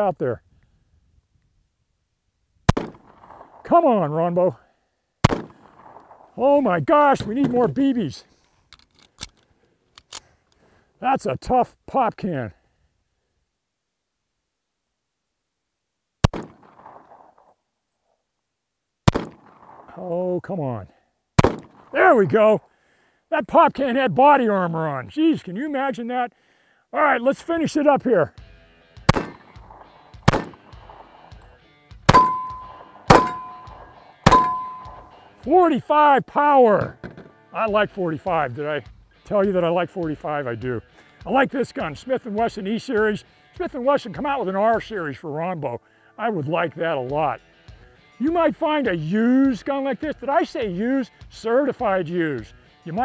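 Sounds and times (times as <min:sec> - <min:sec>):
pistol shots: 0:02.7 - 0:03.6, 0:05.2 - 0:06.3, 0:16.2 - 0:17.4, 0:19.1 - 0:19.9, 0:21.4 - 0:21.9, 0:29.1 - 0:31.4, 0:32.1 - 0:35.1
pistol reloading clicks: 0:08.7 - 0:10.6
steel target ringing: 0:32.1 - 0:35.2.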